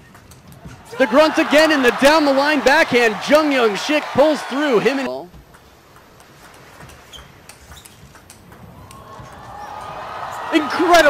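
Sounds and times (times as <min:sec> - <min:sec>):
hall background noise: 0:00.4 - 0:11.0
table tennis ball clicking: 0:05.5 - 0:09.0.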